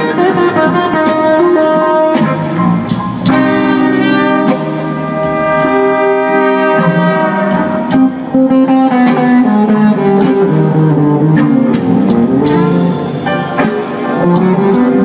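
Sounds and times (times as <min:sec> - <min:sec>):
drums: 0:00.0 - 0:15.0
electric guitar: 0:00.0 - 0:15.0
long held brass notes: 0:03.3 - 0:10.7.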